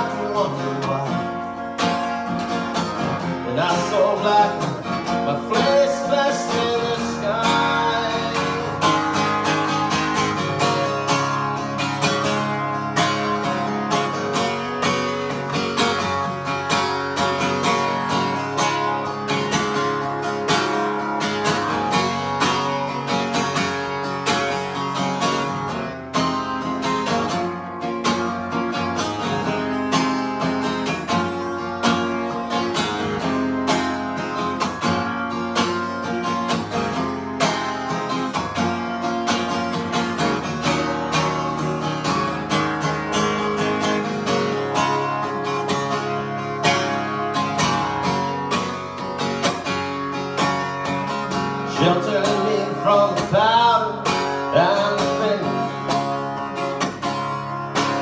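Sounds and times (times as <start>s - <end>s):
acoustic guitar strumming: 0.0s - 58.0s.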